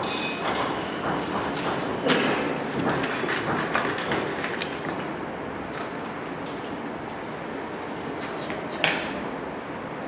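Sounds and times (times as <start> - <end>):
busy room background: 0.0 - 10.0.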